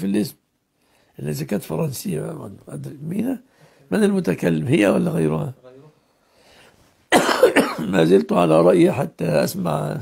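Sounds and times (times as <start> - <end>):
man coughing: 7.1 - 8.0.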